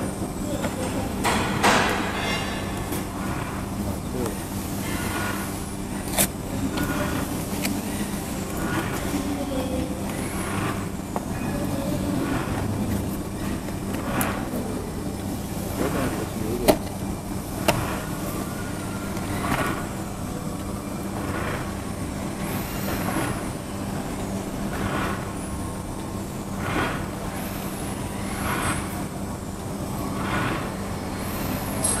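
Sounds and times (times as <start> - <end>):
packing machine hum: 0.0 - 32.0
machine whooshing strokes: 1.9 - 32.0.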